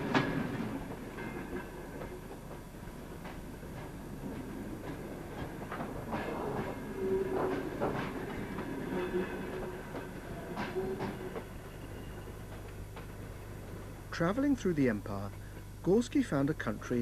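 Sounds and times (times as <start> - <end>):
train wheels clacking over joints: 0.0 - 13.3.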